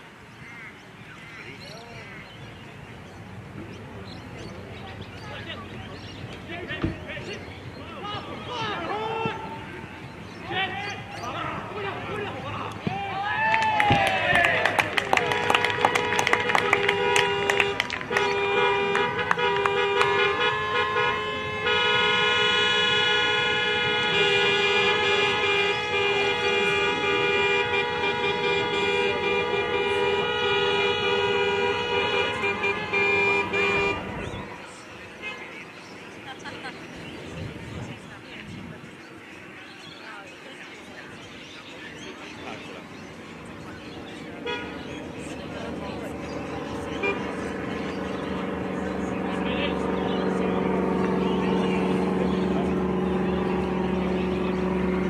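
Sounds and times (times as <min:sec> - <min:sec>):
people shouting: 0:07.8 - 0:09.8, 0:10.4 - 0:15.8
people clapping: 0:12.6 - 0:20.7
car horns honking: 0:13.8 - 0:35.8, 0:43.3 - 0:55.0.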